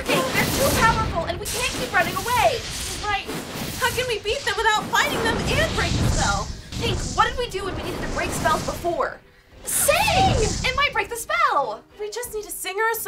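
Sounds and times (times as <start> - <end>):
women's voices: 0.0 - 13.0.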